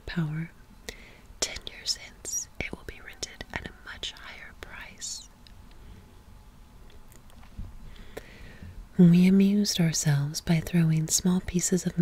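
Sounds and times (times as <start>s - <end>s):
close whispering: 1.4s - 5.3s.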